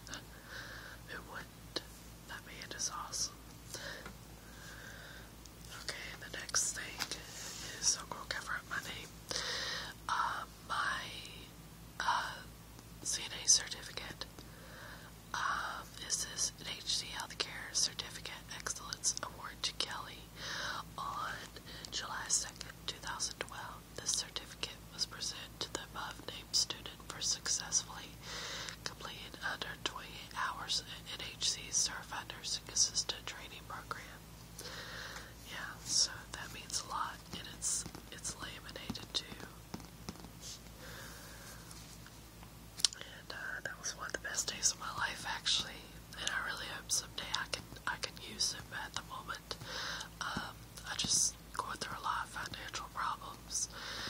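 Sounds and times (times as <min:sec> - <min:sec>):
person whispering: 0:01.1 - 0:03.4, 0:05.7 - 0:09.1, 0:10.1 - 0:11.4, 0:15.4 - 0:20.3, 0:21.0 - 0:28.1, 0:28.8 - 0:34.2, 0:35.4 - 0:39.6, 0:42.8 - 0:49.6, 0:50.2 - 0:53.7.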